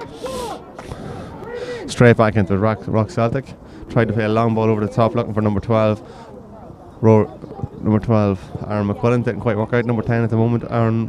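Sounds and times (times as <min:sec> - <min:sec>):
faint raised voices calling out: 0:00.0 - 0:11.0.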